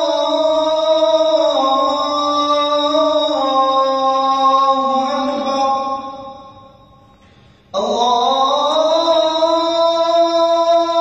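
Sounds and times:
man chanting call to prayer: 0.0 - 6.6, 7.8 - 11.0.

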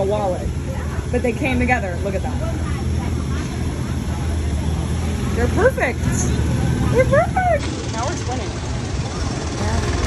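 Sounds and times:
city street traffic rumble: 0.0 - 10.0
faint voices of passers-by: 0.0 - 10.0.

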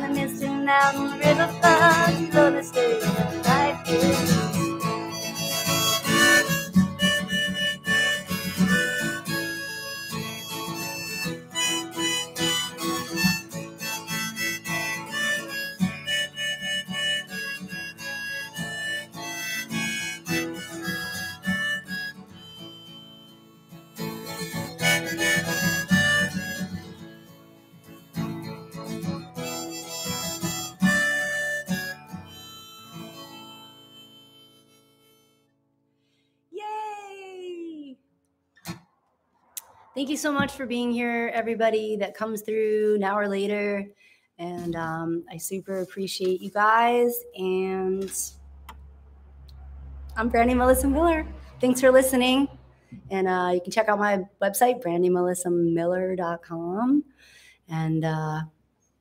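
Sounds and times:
strummed acoustic guitar: 0.0 - 35.5
harmonica: 0.0 - 35.6.

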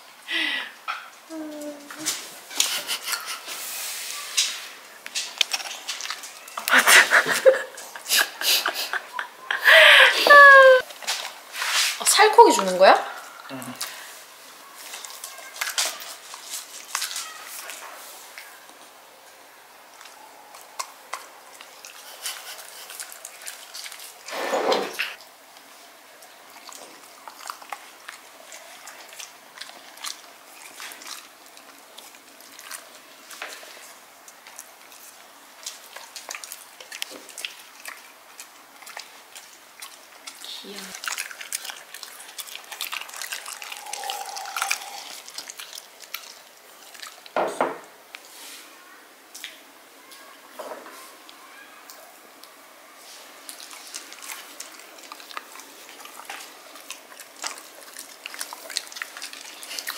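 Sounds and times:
dog chewing food: 4.3 - 6.7, 20.0 - 24.3, 25.2 - 47.4, 53.1 - 59.9.

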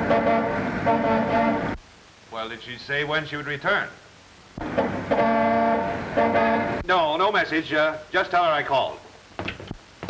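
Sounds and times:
horn honking: 0.0 - 1.8, 4.8 - 6.8.

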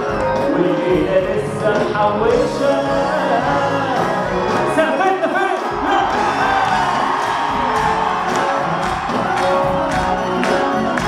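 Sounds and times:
live band music: 0.0 - 11.0
crowd cheering: 4.5 - 11.0.

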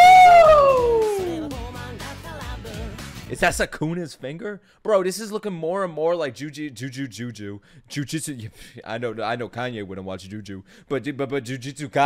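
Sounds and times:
man yelling excitedly: 0.0 - 1.6
song playing in background: 0.0 - 3.5.

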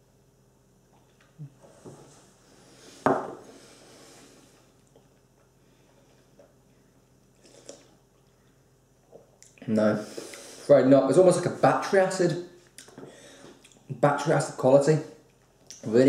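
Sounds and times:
glass knocking on wooden table: 3.1 - 3.4
person sipping and swallowing: 7.3 - 8.4.

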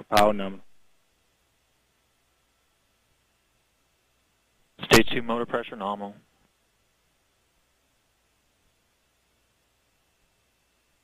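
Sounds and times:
man speaking: 0.0 - 0.6, 4.8 - 6.2.

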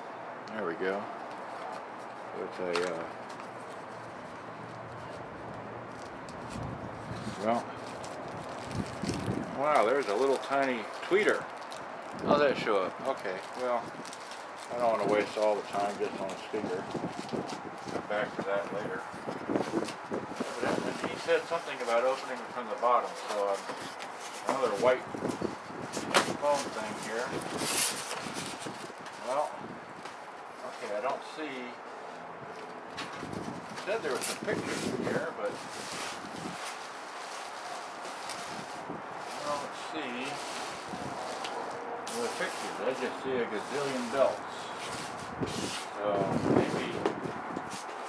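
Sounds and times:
outdoor background hiss: 0.0 - 48.0
plastic bag rustling: 2.8 - 31.0, 32.9 - 48.0
low wind rumble: 3.8 - 21.5, 24.7 - 30.6, 31.6 - 42.2, 44.4 - 47.8.

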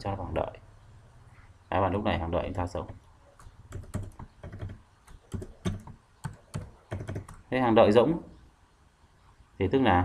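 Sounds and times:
computer keyboard typing: 2.8 - 7.5.

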